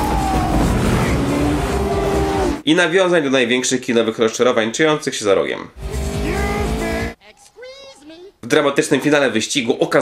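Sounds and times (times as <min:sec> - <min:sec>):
motorcycle engines revving: 0:00.0 - 0:02.6, 0:05.8 - 0:07.2
person speaking: 0:05.9 - 0:09.4.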